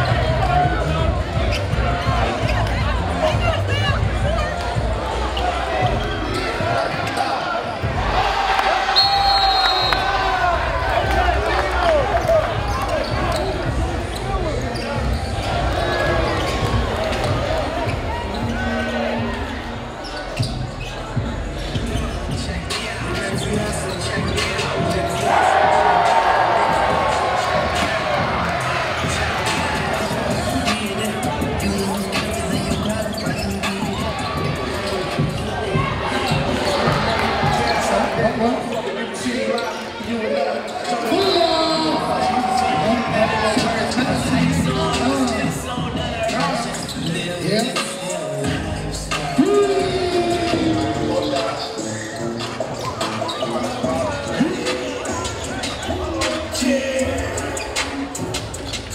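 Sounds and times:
echoing voices: 0.0s - 58.9s.

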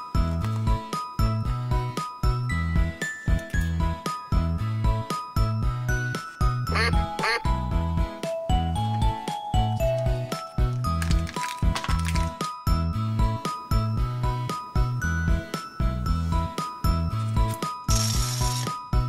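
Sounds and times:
cheerful children's music: 0.0s - 19.0s
duck quacks: 6.7s - 7.5s.

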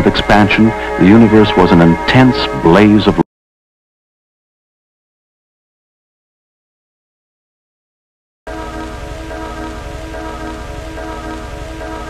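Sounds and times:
droning held chord: 0.0s - 3.2s, 8.5s - 12.0s
low hum: 8.5s - 12.0s.

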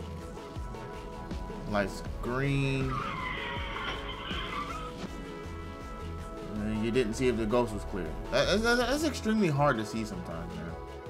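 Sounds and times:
background music: 0.0s - 11.0s
car tyres squealing: 2.5s - 6.2s.

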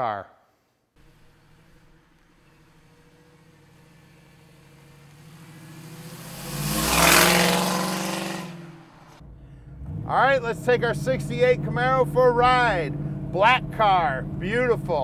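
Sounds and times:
car passing by: 1.0s - 10.3s
car engine from inside: 1.0s - 15.0s.

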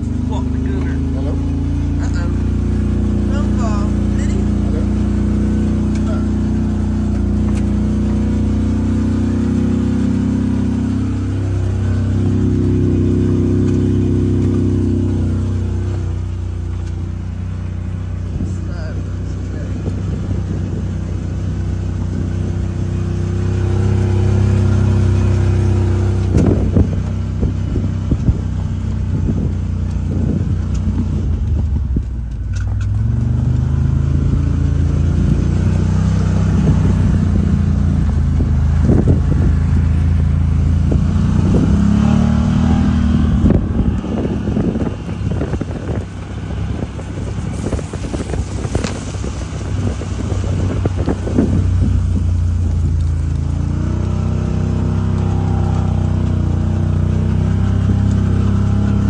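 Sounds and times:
off-road vehicle engine running: 0.0s - 59.0s.

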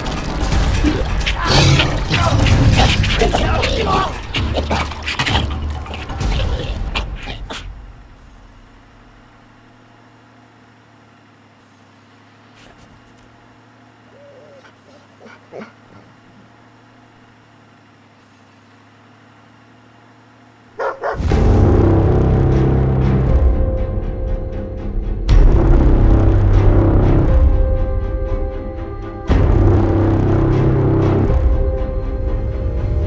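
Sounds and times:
low steady hum: 0.4s - 33.0s
dog barking loudly: 14.5s - 16.1s, 20.8s - 21.2s.

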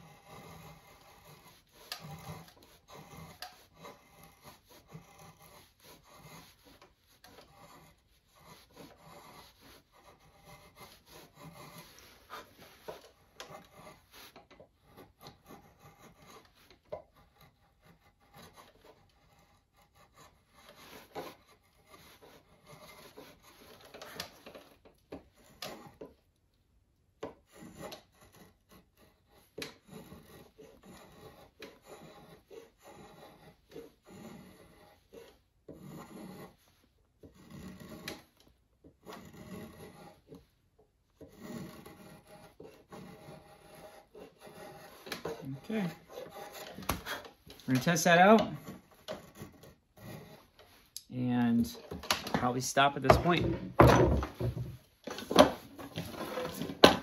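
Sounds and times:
drawknife scraping wood: 0.0s - 26.2s, 27.2s - 40.5s, 41.2s - 57.0s.

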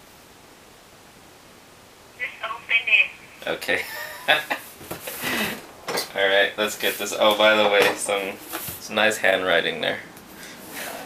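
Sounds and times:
faint room hiss: 0.0s - 11.0s
woman's voice through phone speaker: 2.2s - 3.3s.

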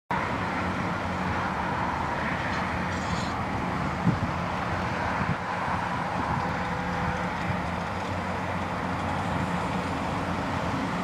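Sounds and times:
diesel engine under load: 0.1s - 11.0s.

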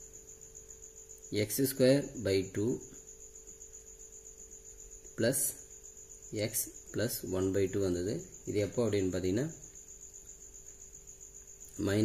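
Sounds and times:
faint high-pitched whine: 0.0s - 12.0s
person speaking: 11.7s - 12.0s.

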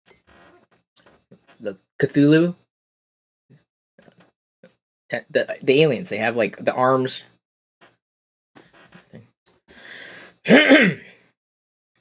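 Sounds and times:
man clearing his throat: 10.5s - 11.1s.

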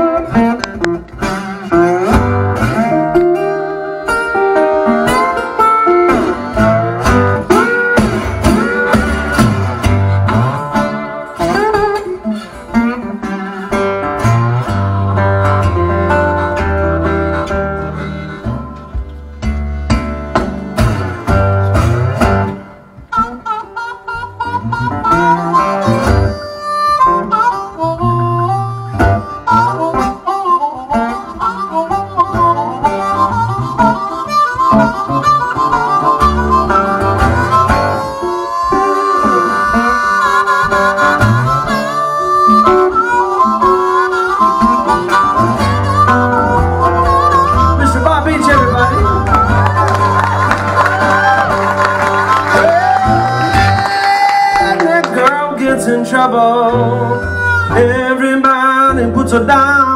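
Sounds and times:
blues harmonica with bent notes: 0.0s - 59.9s
slide guitar: 0.0s - 59.9s.

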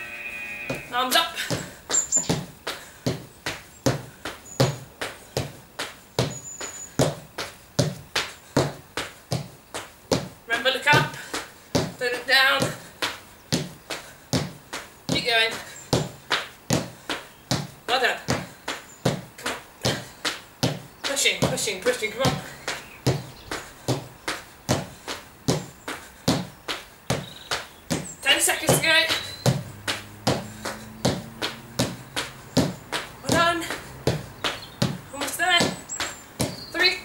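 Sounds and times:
feet landing on plastic step: 0.7s - 12.0s, 12.6s - 37.0s.

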